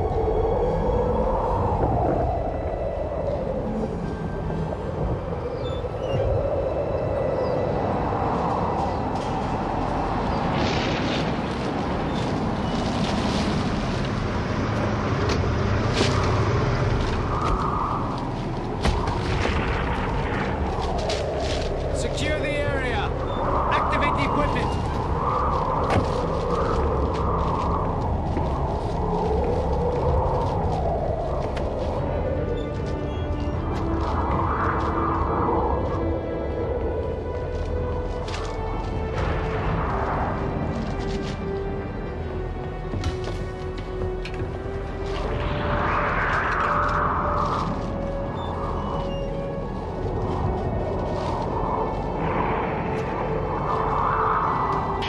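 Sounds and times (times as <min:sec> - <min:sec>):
wavering howling tones: 0:00.0 - 0:42.9, 0:44.0 - 0:55.0
low rumble: 0:00.0 - 0:55.0
sharp crackles and bangs: 0:10.2 - 0:22.0.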